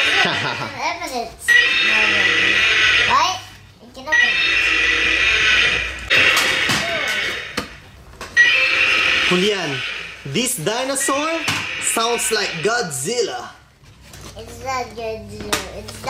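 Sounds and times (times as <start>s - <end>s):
toy dinosaur electronic roar: 1.5s - 3.2s, 4.2s - 7.8s, 8.4s - 10.3s.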